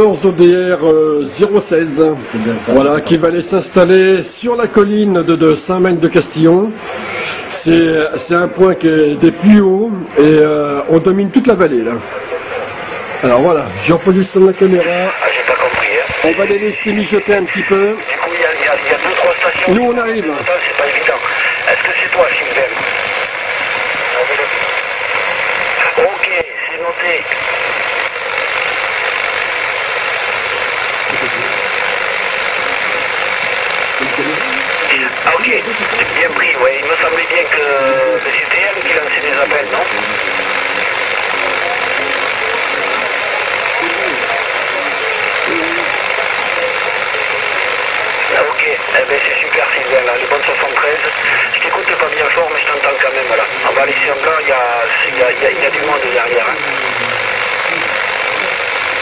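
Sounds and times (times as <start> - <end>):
radio static: 0.0 - 59.0
garbled radio voices: 10.9 - 59.0.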